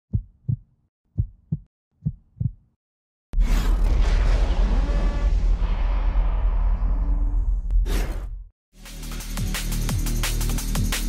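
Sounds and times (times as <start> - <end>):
heartbeat thumps: 0.1 - 2.7.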